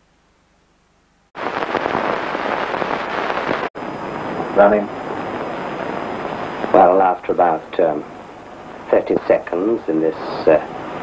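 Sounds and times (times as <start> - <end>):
film soundtrack crackle and hiss: 0.0 - 11.0.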